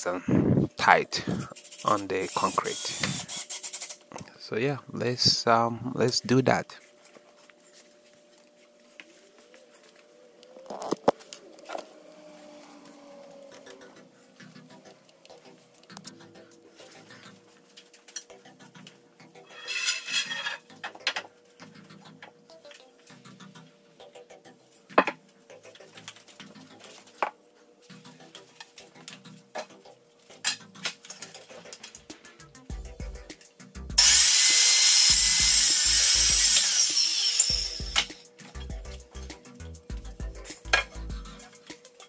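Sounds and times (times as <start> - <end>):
power saw cutting wood: 1.8 - 4.0, 34.0 - 38.2.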